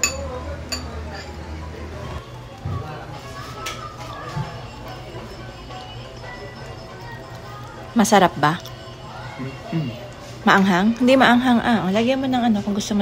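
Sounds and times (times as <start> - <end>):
faint voices: 0.0 - 13.0
background music: 3.9 - 13.0.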